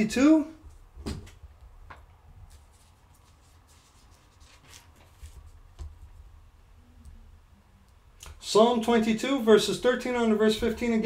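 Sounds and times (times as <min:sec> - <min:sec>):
low steady hum: 0:00.0 - 0:11.0
book pages turning: 0:02.4 - 0:06.2.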